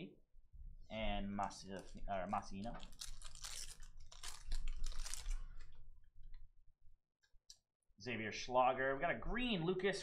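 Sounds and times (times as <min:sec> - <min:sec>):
foil wrapper crinkling: 0:01.8 - 0:05.8.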